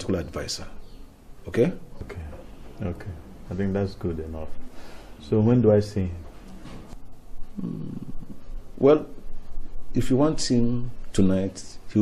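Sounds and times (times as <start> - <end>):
man speaking: 1.4 - 4.6
low murmured voice: 7.4 - 8.6.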